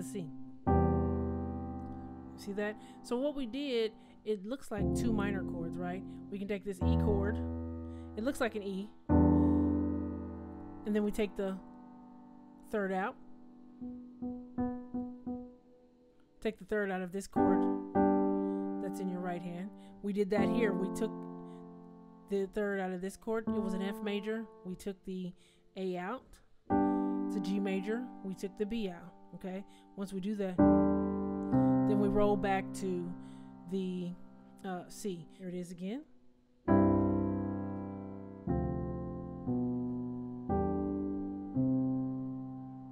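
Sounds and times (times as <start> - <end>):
piano chord struck: 0.0 - 2.9, 4.8 - 15.7, 36.7 - 42.9.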